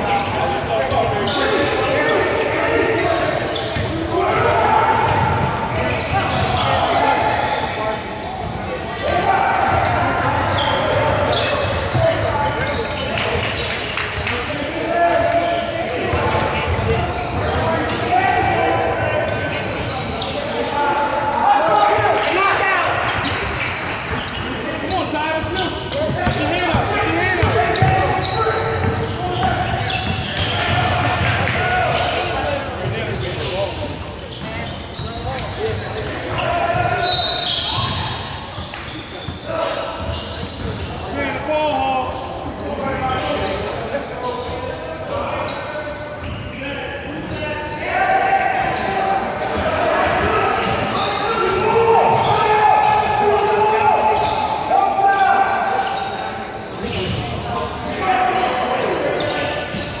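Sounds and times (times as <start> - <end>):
people calling out and talking: 0.0 - 60.0.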